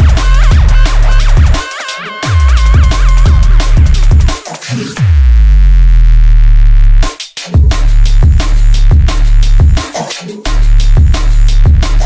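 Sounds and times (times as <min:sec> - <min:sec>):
drum and bass music: 0:00.0 - 0:12.0
deep bass note sliding down: 0:02.4 - 0:04.3.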